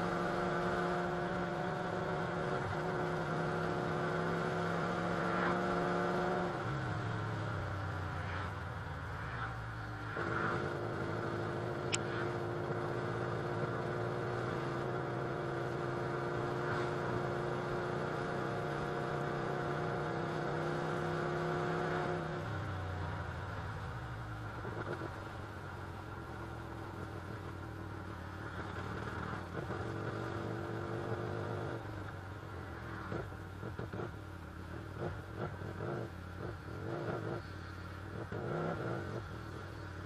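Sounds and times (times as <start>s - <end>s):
road and wind noise: 0.0s - 40.0s.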